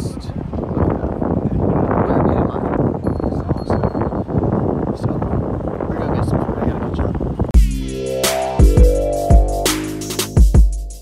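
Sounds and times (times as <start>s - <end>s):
wind buffeting microphone: 0.0s - 7.6s
electronic music with heavy bass: 7.6s - 11.0s.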